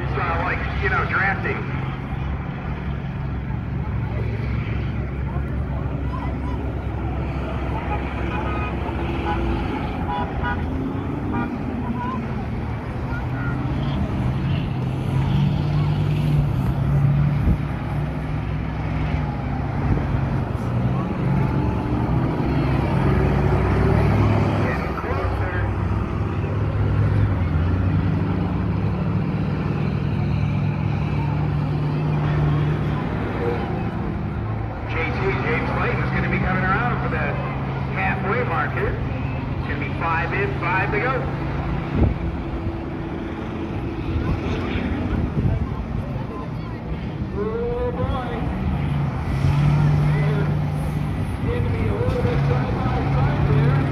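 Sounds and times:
bus engines racing: 0.0 - 53.9
crowd voices: 0.0 - 53.9.

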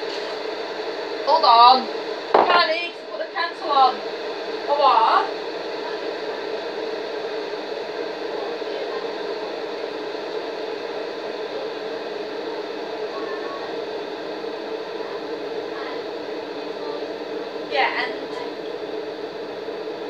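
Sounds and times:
household appliance humming: 0.0 - 20.0.

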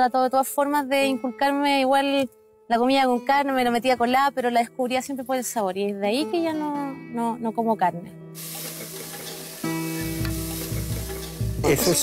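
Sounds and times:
background music with held notes: 0.0 - 12.0
onions sizzling in a pot: 8.4 - 12.0.

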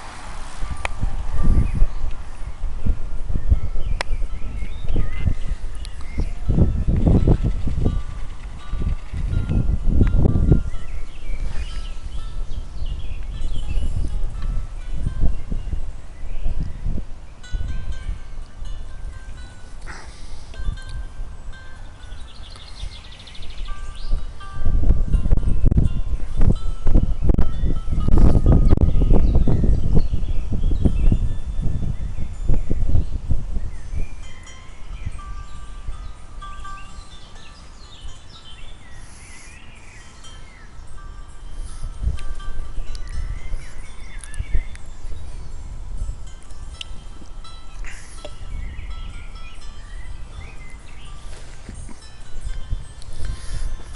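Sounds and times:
wind buffeting microphone: 0.0 - 53.9
faint bird chirps: 22.0 - 24.2, 34.8 - 41.0.

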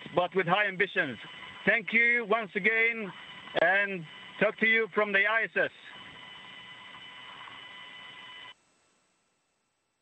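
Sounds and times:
radio hiss: 0.0 - 8.6
faint steady tones: 0.0 - 10.0.

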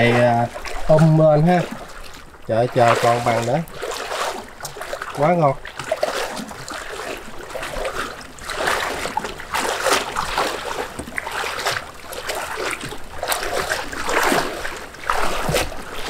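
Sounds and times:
plastic boat hull sliding through water: 0.0 - 16.0
water splashing as person wades: 0.0 - 16.0.

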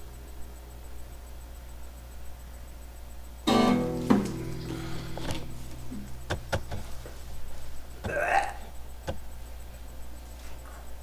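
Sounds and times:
person's non-speech vocal sound: 8.0 - 8.7.

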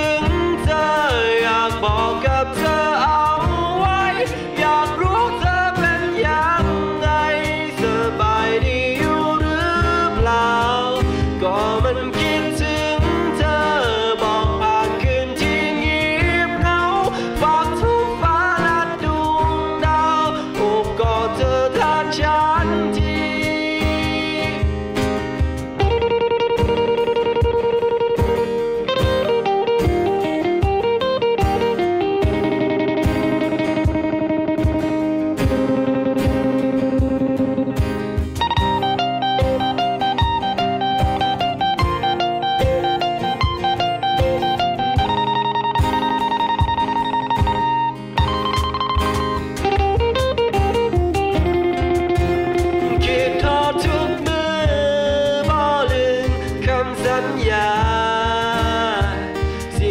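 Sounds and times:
acoustic guitars strumming and picking: 0.0 - 59.9
cajon beat: 0.0 - 59.9.

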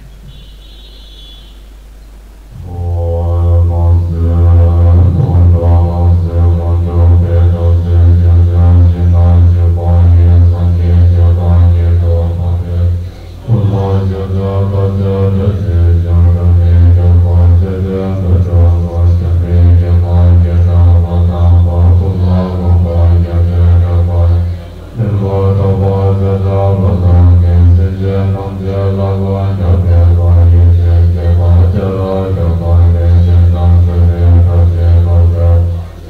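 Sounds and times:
long horns deep steady note: 0.0 - 36.0.

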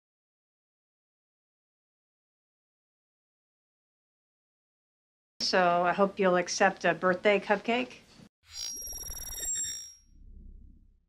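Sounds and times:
faint low rumble: 10.1 - 11.0.

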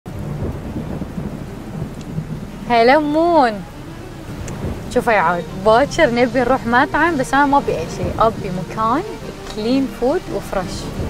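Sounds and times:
low rumble of thunder: 0.1 - 11.0
steady rain: 0.1 - 11.0.

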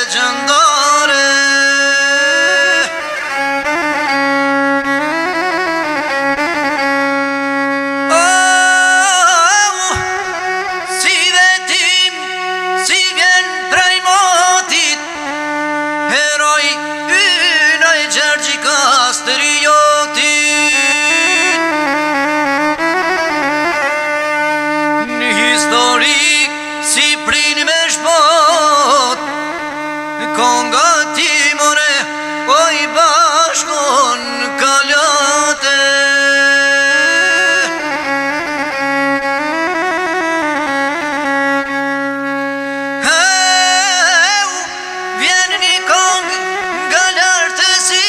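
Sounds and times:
man singing with vibrato: 0.0 - 6.2, 6.8 - 39.6, 40.2 - 48.0
bowed fiddle melody over drone: 0.0 - 48.0.

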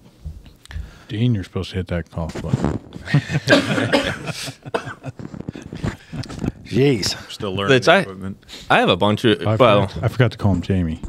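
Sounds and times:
men laughing: 3.0 - 7.3
coughing: 3.1 - 6.6.

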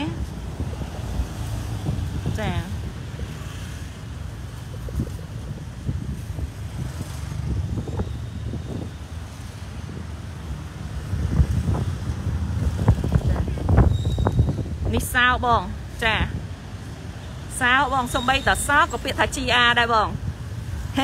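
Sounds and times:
wind buffeting microphone: 0.0 - 17.2.

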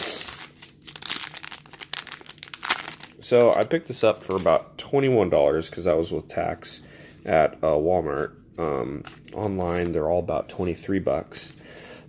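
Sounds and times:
foil wrapper crinkling: 0.0 - 4.6.

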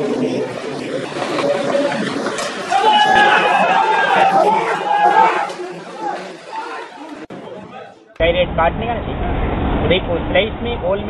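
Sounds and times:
people talking over one another: 0.0 - 9.0.

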